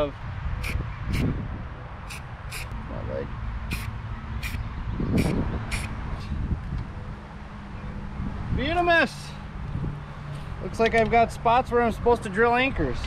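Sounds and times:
low wind rumble: 0:00.0 - 0:13.0.

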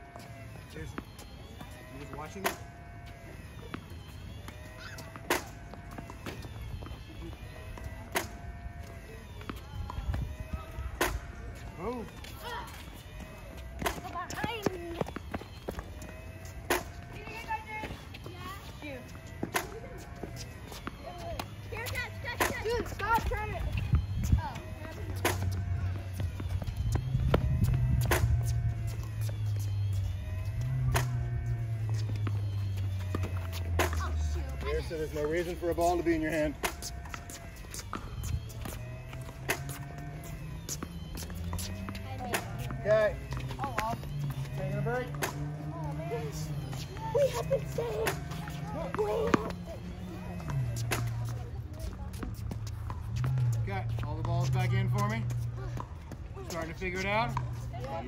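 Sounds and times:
tennis balls struck with rackets: 0:00.9 - 0:11.4, 0:13.7 - 0:17.3, 0:19.1 - 0:23.5, 0:24.6 - 0:58.0
children's voices: 0:45.8 - 0:49.9.

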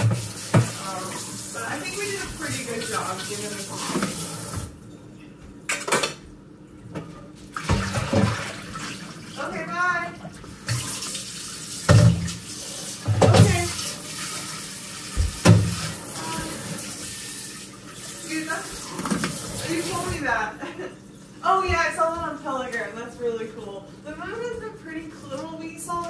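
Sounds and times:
water running into sink: 0:00.0 - 0:04.8, 0:07.5 - 0:20.5
dishes clanking in sink: 0:00.0 - 0:06.2, 0:06.9 - 0:09.0, 0:11.8 - 0:17.3, 0:18.3 - 0:20.4.

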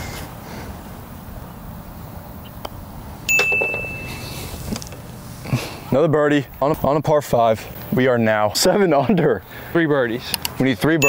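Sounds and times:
ball ringing in metal cup: 0:03.3 - 0:04.2.

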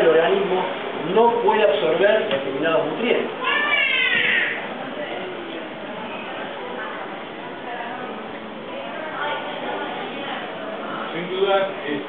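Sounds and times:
faint background murmur: 0:00.0 - 0:12.0.

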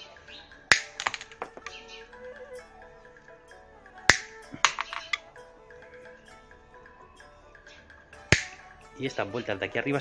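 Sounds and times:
wire cutters snapping wire: 0:00.7 - 0:01.8, 0:04.1 - 0:05.2, 0:08.3 - 0:08.6.

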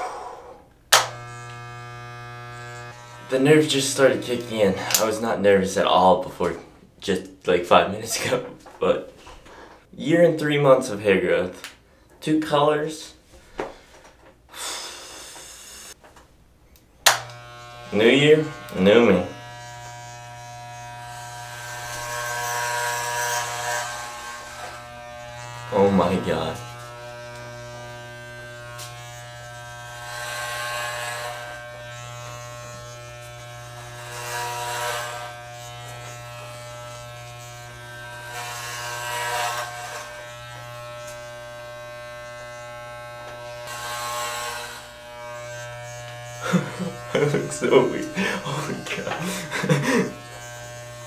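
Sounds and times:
clippers rasping through hair: 0:00.9 - 0:05.4, 0:13.6 - 0:16.0, 0:17.0 - 0:51.0
electric hair clippers buzzing: 0:00.9 - 0:05.4, 0:14.6 - 0:16.0, 0:17.0 - 0:51.0.

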